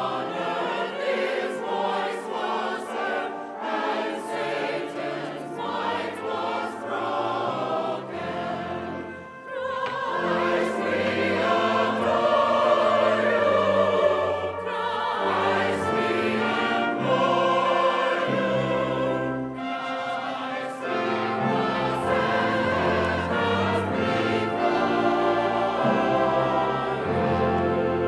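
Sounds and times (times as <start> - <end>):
accompanying instruments: 0.0 - 28.0
choir singing a hymn: 0.0 - 28.0.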